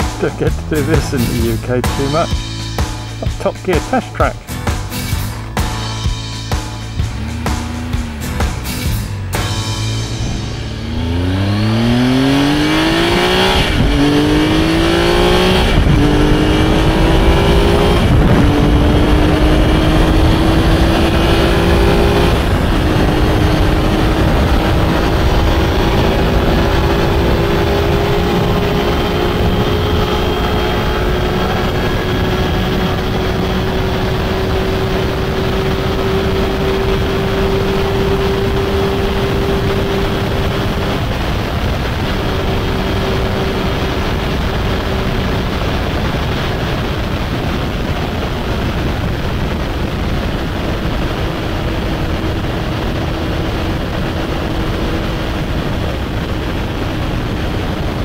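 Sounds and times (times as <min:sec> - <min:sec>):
motorcycle engine accelerating: 0:00.0 - 0:58.0
wind rush: 0:07.0 - 0:58.0.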